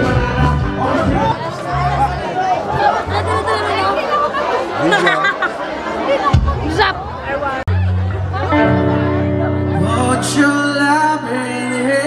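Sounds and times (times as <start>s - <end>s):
loud party music with bass: 0.0s - 2.2s
crowd chattering: 0.0s - 12.0s.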